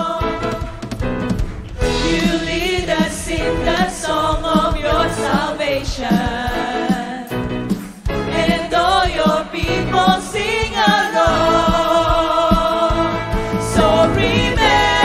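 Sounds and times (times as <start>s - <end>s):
group singing praise song: 0.0s - 0.8s, 1.8s - 7.3s, 8.2s - 15.0s
keyboard and drums band: 0.0s - 15.0s.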